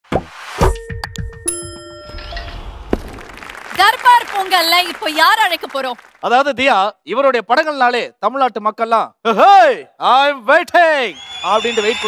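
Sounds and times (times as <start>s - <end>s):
bell-like chime: 0.7s - 2.9s.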